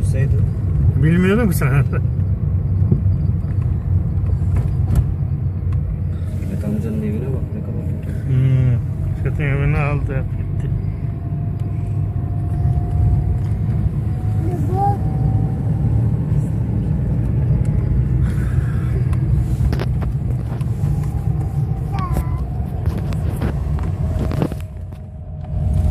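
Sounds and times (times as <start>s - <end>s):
car engine and tyre rumble: 0.0s - 25.9s.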